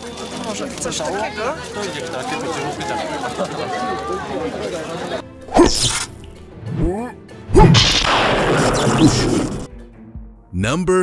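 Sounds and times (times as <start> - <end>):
hissing burst: 7.6 - 9.7.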